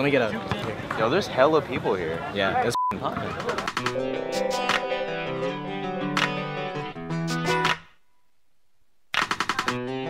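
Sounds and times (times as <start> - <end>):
plucked guitar background music: 3.8 - 7.8.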